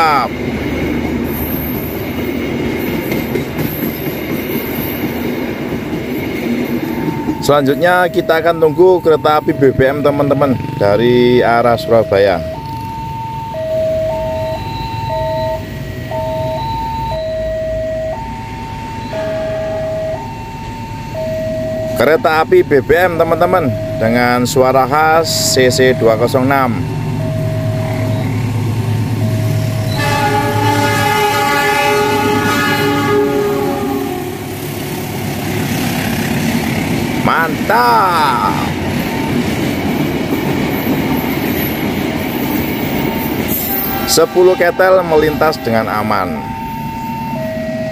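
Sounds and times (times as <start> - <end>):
freight train wheels rumbling on rails: 0.0 - 13.2, 21.9 - 47.9
level crossing two-tone alarm: 6.0 - 34.2, 37.3 - 39.7, 42.5 - 47.9.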